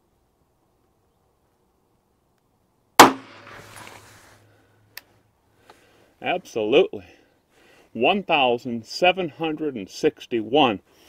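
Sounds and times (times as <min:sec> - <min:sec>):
pistol shot with echo: 0:03.0 - 0:03.6.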